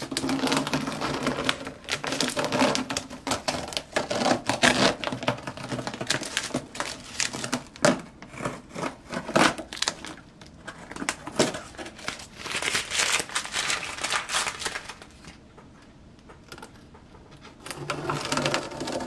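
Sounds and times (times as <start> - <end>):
tape peeling and crinkling: 0.0 - 15.4.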